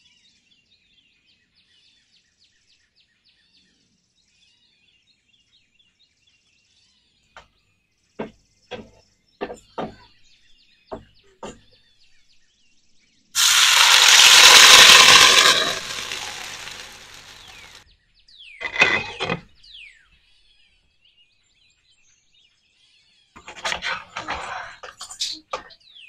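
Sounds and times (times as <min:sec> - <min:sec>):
batter sizzling in hot oil: 0:13.4 - 0:17.8, 0:18.6 - 0:19.4, 0:23.4 - 0:25.4
spatula scraping pan: 0:13.4 - 0:17.8, 0:18.6 - 0:19.5, 0:23.4 - 0:25.7.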